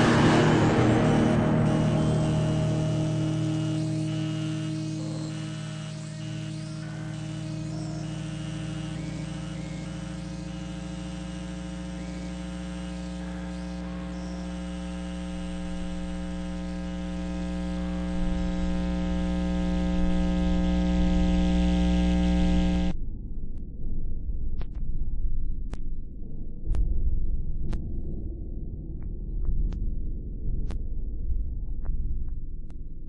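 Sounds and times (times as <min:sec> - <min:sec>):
drone music chord: 0:00.0 - 0:22.9
low hum: 0:00.0 - 0:33.0.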